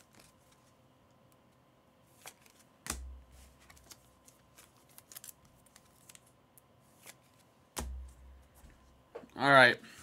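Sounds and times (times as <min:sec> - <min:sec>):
cards clicking and rustling: 0:02.1 - 0:06.3.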